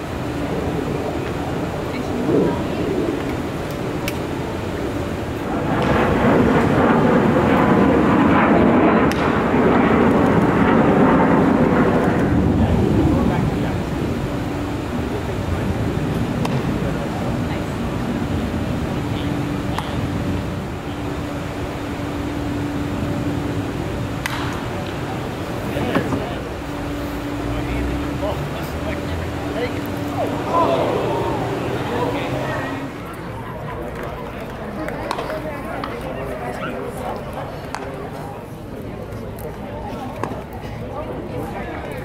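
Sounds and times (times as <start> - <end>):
low steady hum: 0.0 - 36.5
crowd chatter: 0.0 - 42.0
spectators talking: 0.0 - 42.0
sharp crack: 5.7 - 11.2, 24.2 - 25.1
wooden bat hitting baseball: 24.2 - 24.6.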